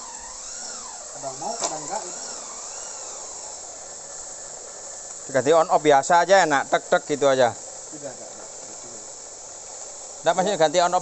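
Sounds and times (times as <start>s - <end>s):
electric motor whining: 0.0s - 5.9s.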